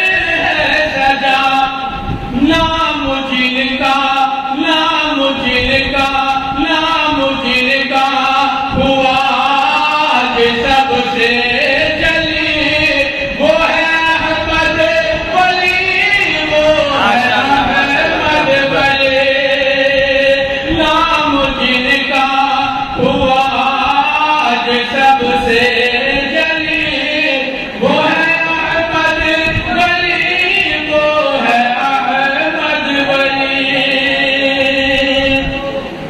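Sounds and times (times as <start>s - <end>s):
man chanting into microphone: 0.0s - 36.0s
man singing a long note: 0.0s - 36.0s.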